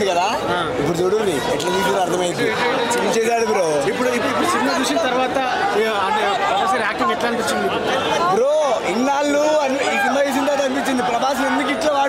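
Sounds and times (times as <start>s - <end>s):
several men talking: 0.0s - 12.0s.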